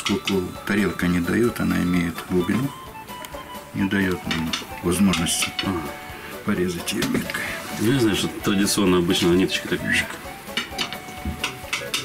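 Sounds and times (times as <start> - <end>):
knife clicking and scraping plate: 10.6 - 12.0.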